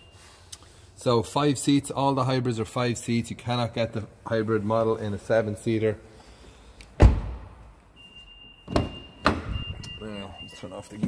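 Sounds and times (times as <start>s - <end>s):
high car warning beep: 0.0s - 0.8s, 7.9s - 11.0s
car door shutting with thunk: 7.0s - 7.5s.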